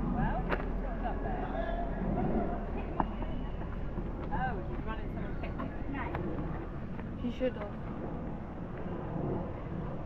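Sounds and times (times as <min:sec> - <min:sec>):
low outdoor rumble: 0:00.0 - 0:10.0.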